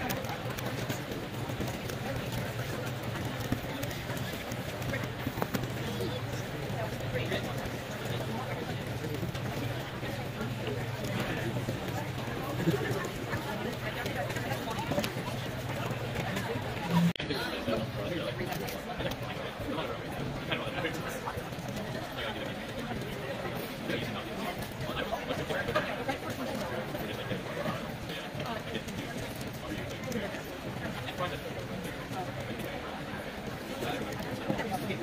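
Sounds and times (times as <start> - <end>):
crowd chatter in a large room: 0.0 - 35.0.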